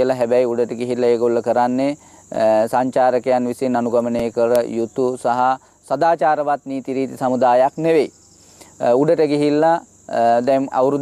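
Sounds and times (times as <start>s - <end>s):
man narrating: 0.0s - 8.1s, 8.7s - 11.0s.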